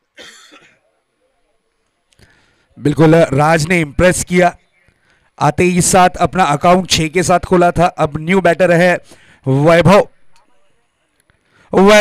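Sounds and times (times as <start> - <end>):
man clearing his throat: 0.2 - 0.8.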